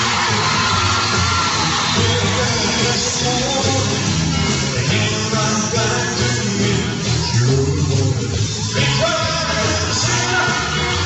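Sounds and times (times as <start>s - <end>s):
bass line: 0.0s - 11.0s
live band playing: 0.0s - 11.0s.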